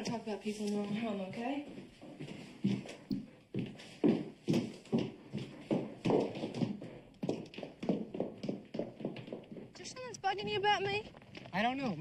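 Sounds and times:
footsteps knocking: 0.0 - 12.0.

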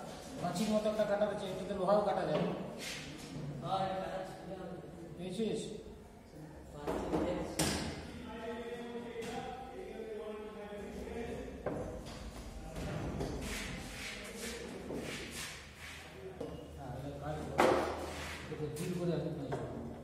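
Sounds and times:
men talking: 16.2 - 19.9.

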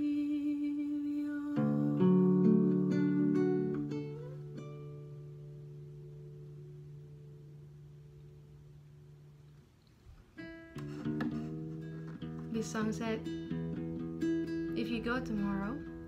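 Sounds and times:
classical guitar playing: 0.0 - 16.0.

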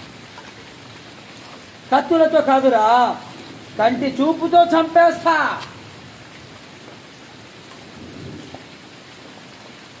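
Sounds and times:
rain falling on pavement: 0.0 - 10.0.

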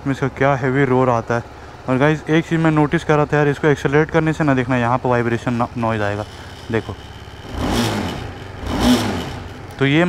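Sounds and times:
number plate vibration rattle: 2.0 - 10.0
motorcycle engine revving: 4.2 - 10.0.

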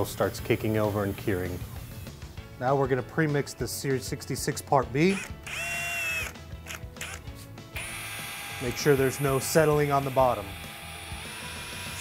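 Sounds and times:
electric drill whine: 5.1 - 7.2, 7.8 - 12.0.

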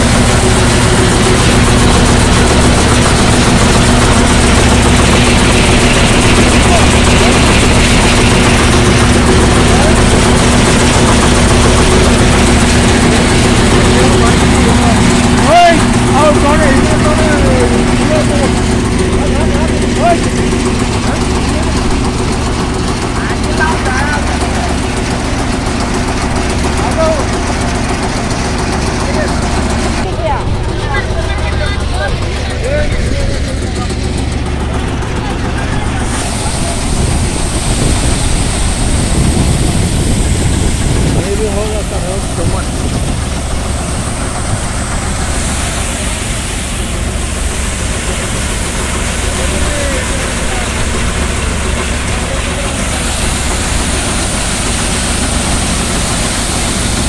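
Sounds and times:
thresher engine humming: 0.0 - 57.0.

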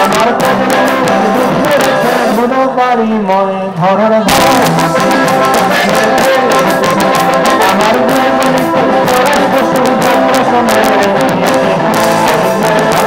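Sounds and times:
loud live band music: 0.0 - 13.0.

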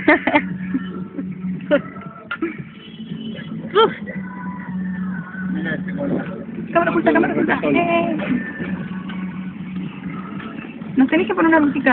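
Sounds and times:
road noise rush: 0.0 - 11.9.

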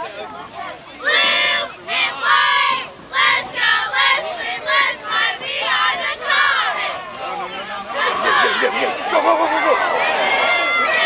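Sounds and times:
cheerleaders chanting in unison: 1.0 - 7.2, 7.8 - 11.0.

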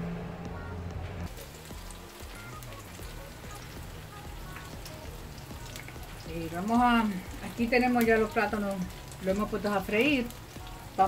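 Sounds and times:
food frying in hot oil: 1.3 - 11.0.

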